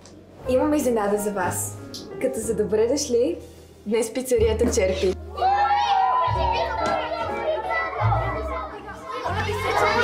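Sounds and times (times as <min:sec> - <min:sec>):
children cheering: 0:05.2 - 0:10.0.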